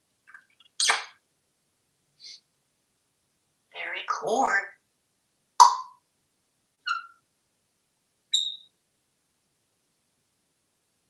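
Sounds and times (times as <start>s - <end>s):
parrot calling: 6.8s - 7.2s, 8.3s - 8.7s
parrot whistled notes: 8.4s - 8.7s.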